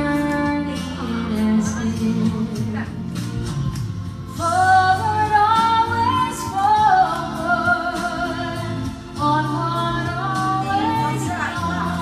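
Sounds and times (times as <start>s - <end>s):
woman singing a ballad: 0.0s - 3.2s, 4.3s - 12.0s
backing music: 0.0s - 12.0s.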